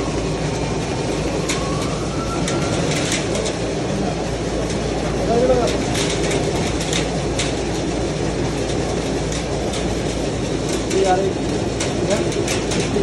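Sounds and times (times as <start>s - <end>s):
grain cleaning machine humming: 0.0s - 13.0s
grains ticking down chutes: 0.0s - 13.0s.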